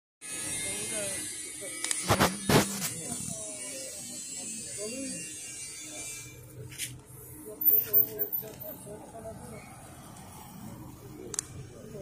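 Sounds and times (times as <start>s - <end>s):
faint voices: 0.4s - 12.0s.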